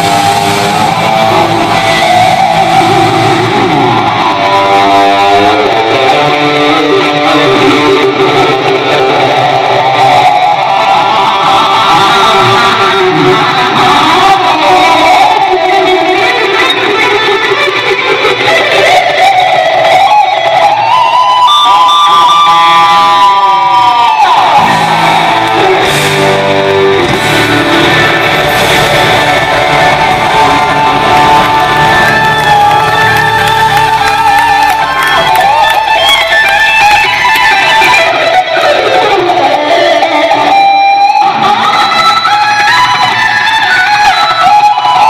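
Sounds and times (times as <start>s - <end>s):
electric guitar lead: 0.0s - 45.0s.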